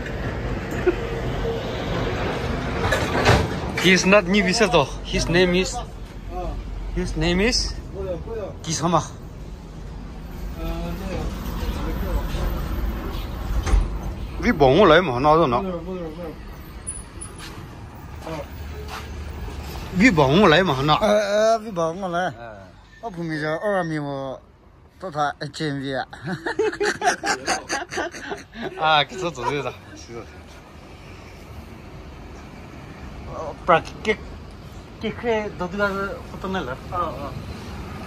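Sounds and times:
vehicle engine rumbling: 0:00.0 - 0:22.0.

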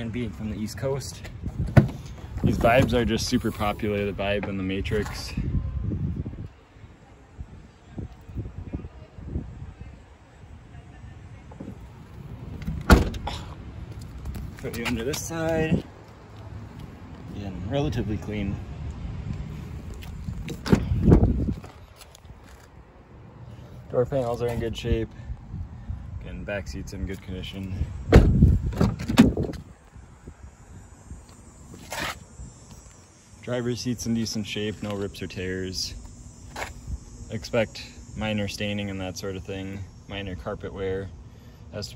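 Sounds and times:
car door shutting with thump: 0:01.6 - 0:03.0, 0:12.5 - 0:13.5, 0:20.5 - 0:21.3, 0:28.1 - 0:29.6
car liftgate shutting thud: 0:12.5 - 0:13.4, 0:28.1 - 0:29.6.

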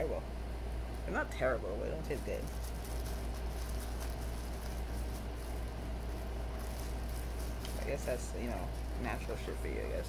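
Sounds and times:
steady low hum: 0:00.0 - 0:10.0
person speaking: 0:01.0 - 0:02.8, 0:07.5 - 0:10.0.

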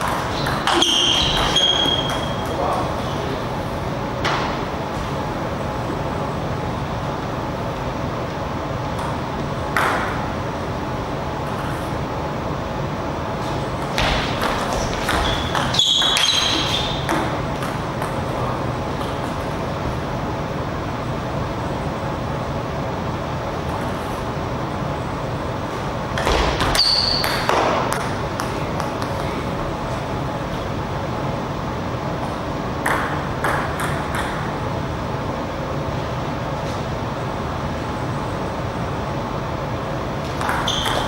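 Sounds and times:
hall hum: 0:00.0 - 0:41.0
high squeaks: 0:00.2 - 0:02.6, 0:15.1 - 0:17.2, 0:26.7 - 0:27.5, 0:40.6 - 0:41.0.

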